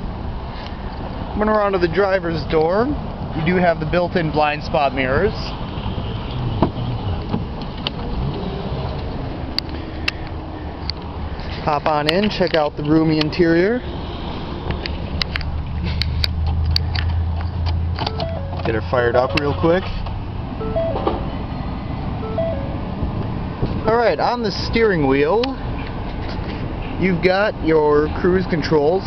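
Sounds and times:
car engine starting and idling: 15.3 - 24.0
car door opening: 18.0 - 21.4
two-note dashboard chime: 18.1 - 20.0, 20.6 - 21.4, 22.2 - 23.0.

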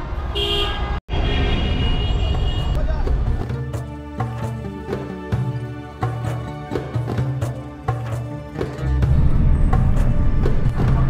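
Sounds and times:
traffic engine and road noise: 0.0 - 4.8
car horns honking: 0.3 - 2.8.

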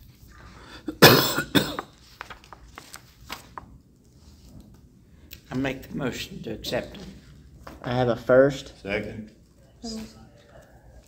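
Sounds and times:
person coughing: 0.8 - 1.9.

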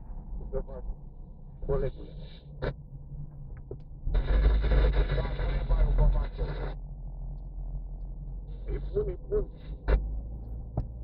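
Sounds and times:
car engine and road hum: 0.0 - 11.0.

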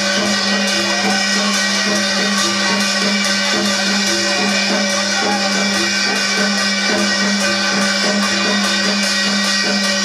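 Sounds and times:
drum beaten in steady rhythm: 0.0 - 10.0.

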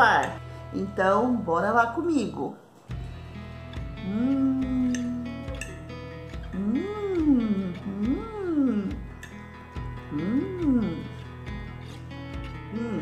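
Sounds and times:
background music: 0.0 - 13.0
woman humming mmm: 3.8 - 9.3, 10.0 - 11.3, 11.9 - 13.0.

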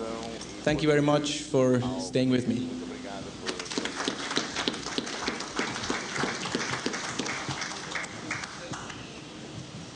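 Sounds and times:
audience applauding: 3.5 - 9.1.

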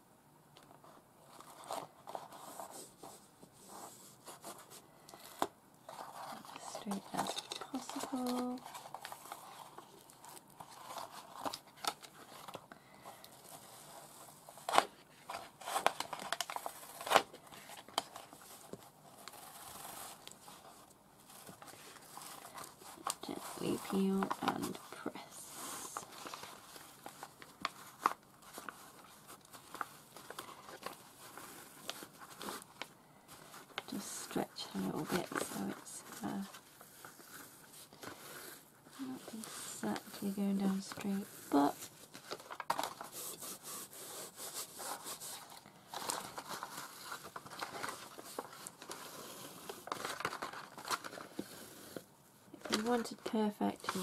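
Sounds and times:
paper crinkling and rustling: 0.6 - 54.0.

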